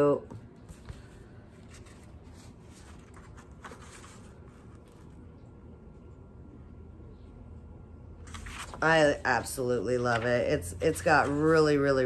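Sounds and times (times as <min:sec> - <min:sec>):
book pages rustling: 0:00.4 - 0:05.2, 0:08.2 - 0:12.0.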